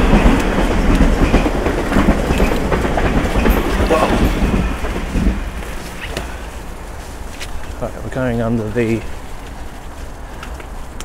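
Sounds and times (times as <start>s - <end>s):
bicycle tyres rumbling on dirt path: 0.0s - 11.0s
wind on camera: 0.0s - 11.0s.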